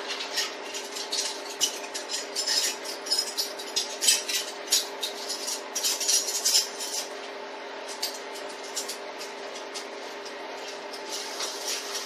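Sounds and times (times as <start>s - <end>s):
hard objects clinking: 0.0s - 7.2s.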